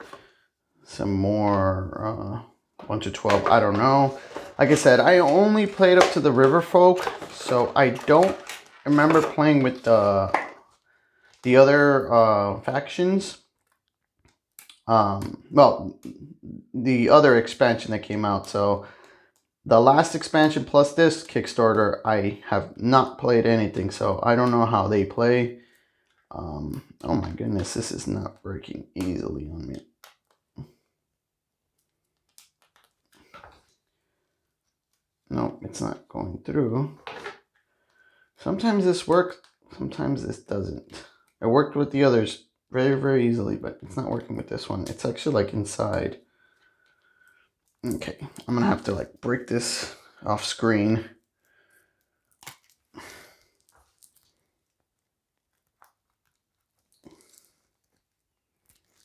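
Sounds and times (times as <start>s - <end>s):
thumbnail picking plastic wrap: 52.3s - 52.9s.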